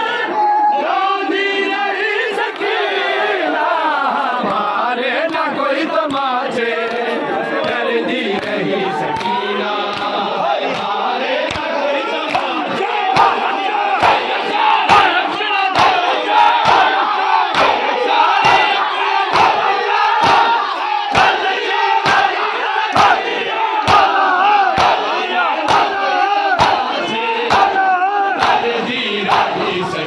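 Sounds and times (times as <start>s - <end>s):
men chanting in unison: 0.0s - 30.0s
palms slapping chests: 10.7s - 21.4s, 23.0s - 26.0s, 26.6s - 27.8s.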